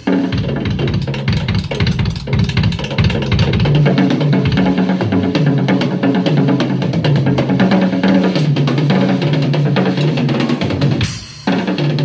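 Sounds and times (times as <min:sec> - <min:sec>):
fast drum kit playing: 0:00.0 - 0:12.0.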